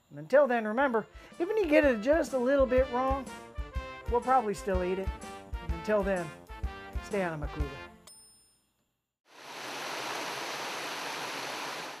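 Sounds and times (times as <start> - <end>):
music: 0.2 - 8.2
high ding: 8.0 - 8.7
waterfall rushing: 9.4 - 12.0.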